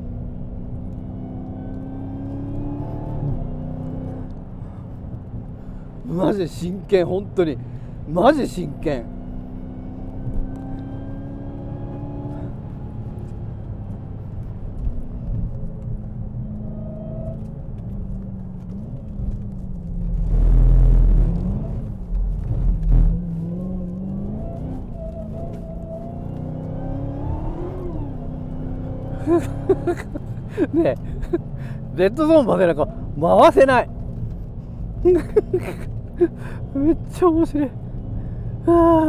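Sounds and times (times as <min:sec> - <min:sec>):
car engine revving: 0:00.2 - 0:04.8, 0:08.4 - 0:14.4, 0:16.3 - 0:39.0
loud low rumble: 0:20.0 - 0:23.2.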